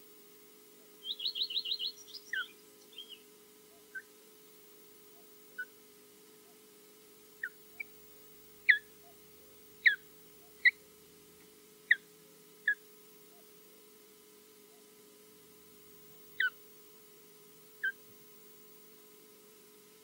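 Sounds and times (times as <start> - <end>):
osprey whistled alarm calls: 1.0 - 3.3, 3.9 - 4.1, 7.4 - 7.9, 8.6 - 8.9, 9.8 - 10.0, 11.9 - 12.1, 16.4 - 16.6, 17.8 - 18.0.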